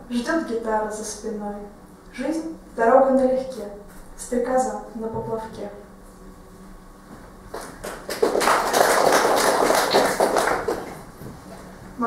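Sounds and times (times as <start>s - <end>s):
audience applauding: 7.5s - 11.1s.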